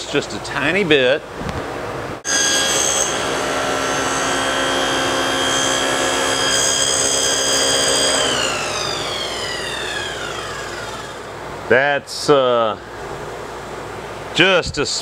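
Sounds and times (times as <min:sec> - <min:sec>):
saw blades coasting down: 0:02.3 - 0:11.4
table saw whining: 0:02.3 - 0:11.4.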